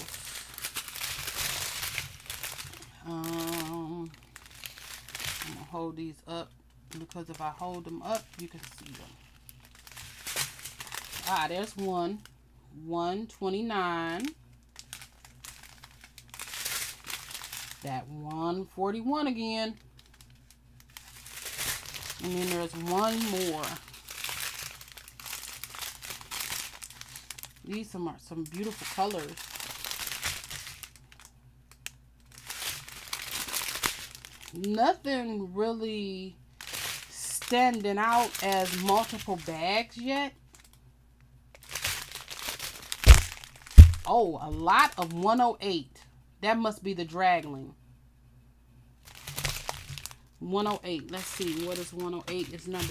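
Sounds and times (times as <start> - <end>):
plastic bags crinkling: 0.0 - 12.3, 14.0 - 18.1, 19.2 - 34.9, 36.6 - 40.8, 41.5 - 45.4, 49.0 - 52.9
sharp thumps: 43.0 - 44.1.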